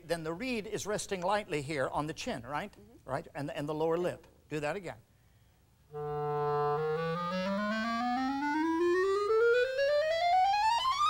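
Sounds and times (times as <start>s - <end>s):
clarinet playing rising run: 5.9s - 11.0s.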